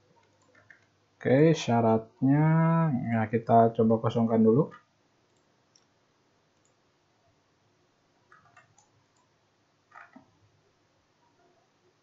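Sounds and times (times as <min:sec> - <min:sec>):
computer mouse clicks: 0:00.2 - 0:00.9, 0:08.3 - 0:09.3.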